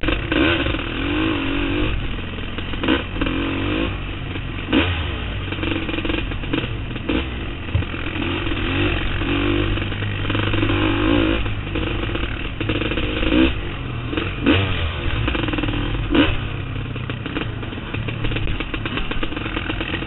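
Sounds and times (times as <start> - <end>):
atv engine running: 0.0 - 20.0.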